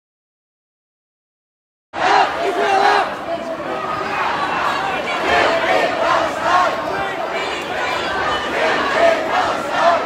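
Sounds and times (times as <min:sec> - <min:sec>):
crowd shouting together: 0:02.0 - 0:10.0.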